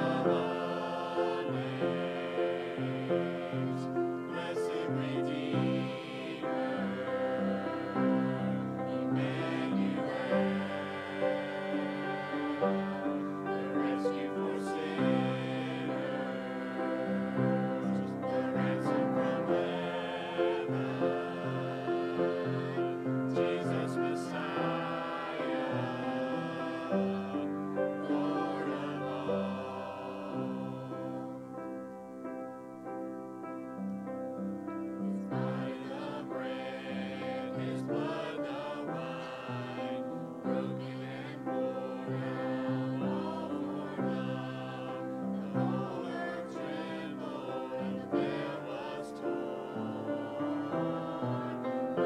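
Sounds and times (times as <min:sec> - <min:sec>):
small group singing: 0:00.0 - 0:31.9, 0:34.8 - 0:52.0
upright piano playing a hymn: 0:00.0 - 0:52.0.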